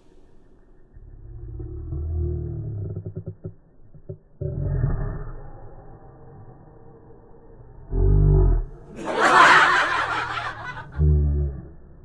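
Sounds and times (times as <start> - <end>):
snickering laughter: 8.9 - 11.2.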